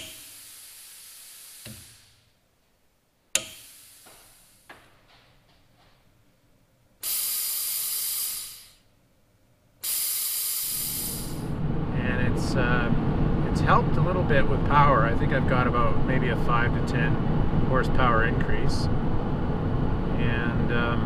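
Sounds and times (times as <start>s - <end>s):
high-pitched hiss: 0.0s - 2.3s, 3.4s - 4.8s, 7.0s - 8.9s, 9.8s - 11.5s
low rumble: 11.1s - 21.0s.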